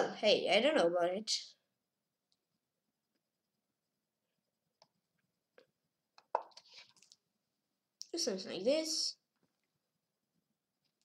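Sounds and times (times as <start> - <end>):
boy speaking: 0.0 - 1.6, 8.0 - 9.3.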